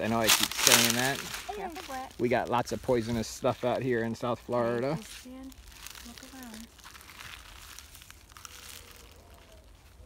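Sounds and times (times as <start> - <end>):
footsteps on dry pine needles: 0.0 - 10.0.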